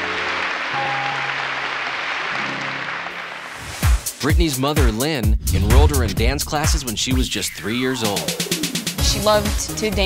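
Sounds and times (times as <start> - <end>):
audience applauding: 0.0 - 3.5.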